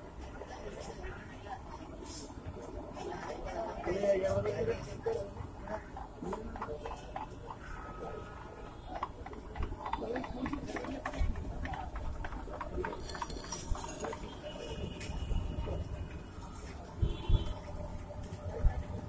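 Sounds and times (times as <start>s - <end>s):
metal utensils and dishes clinking: 13.0s - 14.4s.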